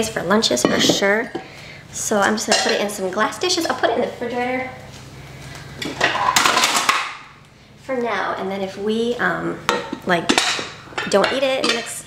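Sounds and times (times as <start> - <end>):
glass containers clattering: 5.9 - 7.1.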